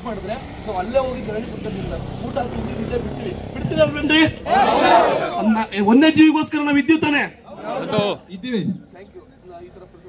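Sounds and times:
vehicle passing rumble: 0.0s - 6.0s
people's voices: 0.0s - 10.0s.

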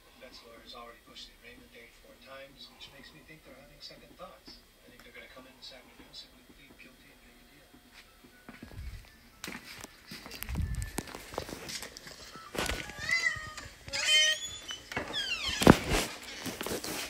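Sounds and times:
dog whining: 12.2s - 15.8s.

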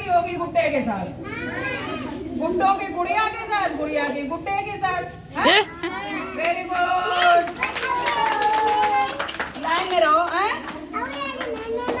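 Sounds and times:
children chattering and calling out: 1.0s - 4.4s, 5.1s - 9.5s, 10.6s - 12.0s.

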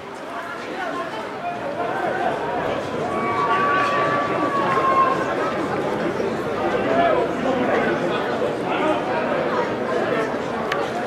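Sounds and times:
voices chattering and calling: 0.5s - 11.0s.

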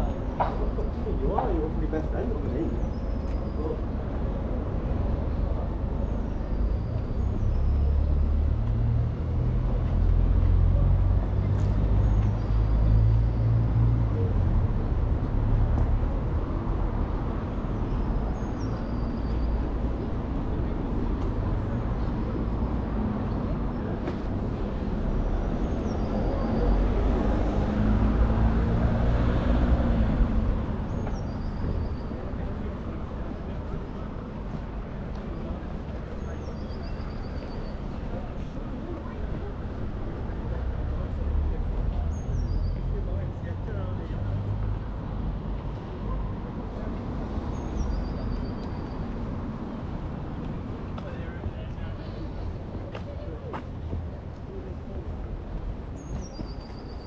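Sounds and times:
road traffic rumble: 0.0s - 57.0s
vehicle passing: 25.4s - 30.9s.

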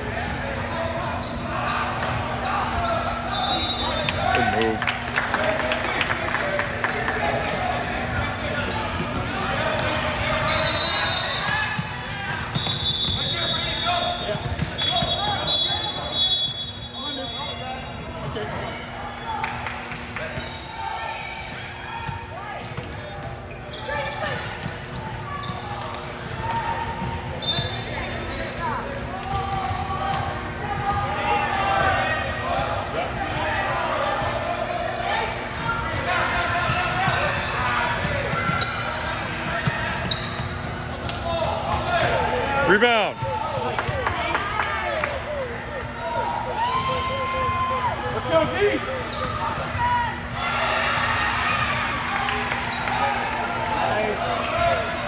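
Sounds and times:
sneakers squeaking on floor: 0.0s - 4.8s, 7.4s - 18.5s, 20.2s - 45.0s, 46.6s - 55.0s.

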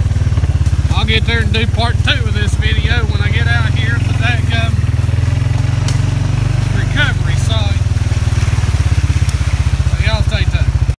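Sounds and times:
atv engine running: 0.0s - 11.0s.

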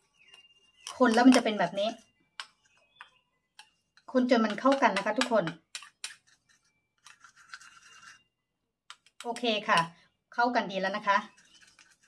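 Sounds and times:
spoon scraping in plastic bowl: 0.1s - 8.4s, 10.9s - 12.0s.

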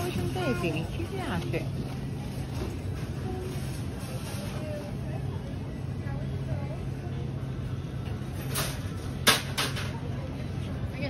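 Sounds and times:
faint distant voices: 0.0s - 11.0s.

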